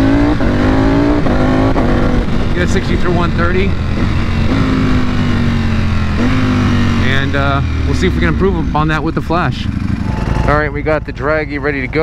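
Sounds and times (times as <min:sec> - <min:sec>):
wind rush on microphone: 0:00.0 - 0:06.8
motorcycle engine droning: 0:00.0 - 0:12.0.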